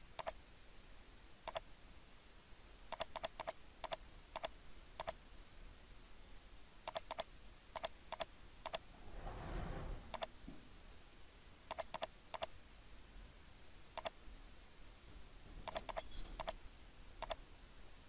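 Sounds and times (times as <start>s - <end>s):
mouse and keyboard clicks: 0.1s - 0.4s, 2.9s - 5.2s, 6.9s - 8.8s, 10.1s - 10.3s, 11.7s - 12.5s, 14.0s - 14.2s, 15.6s - 16.6s, 17.2s - 17.4s
soft rustle: 8.8s - 10.8s.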